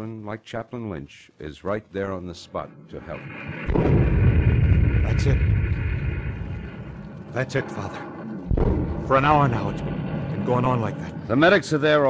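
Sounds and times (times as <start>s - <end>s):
artillery shell bursting rumble: 3.1s - 12.0s.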